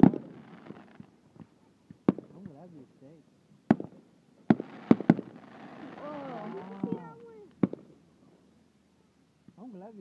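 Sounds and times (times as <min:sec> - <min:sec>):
fireworks bangs: 0:00.0 - 0:02.6, 0:03.7 - 0:07.9
fireworks hiss: 0:04.5 - 0:07.2.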